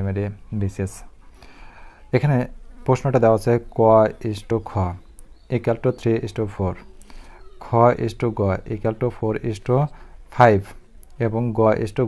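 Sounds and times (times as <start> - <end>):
man speaking: 0.0 - 1.1, 2.1 - 12.0.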